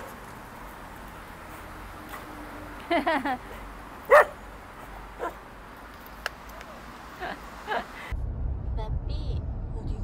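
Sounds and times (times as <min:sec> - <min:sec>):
dog barking: 0:04.1 - 0:04.4, 0:05.2 - 0:05.4.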